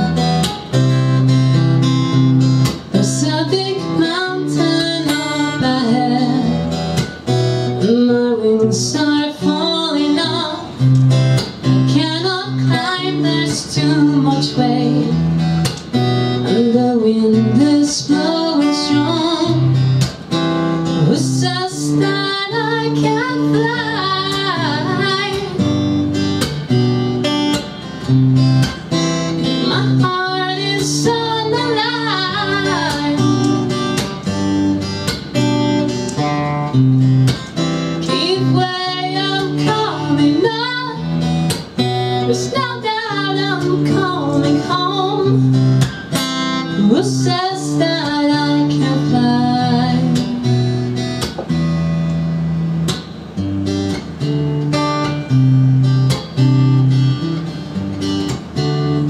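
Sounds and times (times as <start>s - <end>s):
acoustic guitar: 0.0s - 59.0s
woman singing: 2.6s - 20.2s, 20.8s - 26.6s, 29.3s - 34.8s, 36.2s - 50.9s.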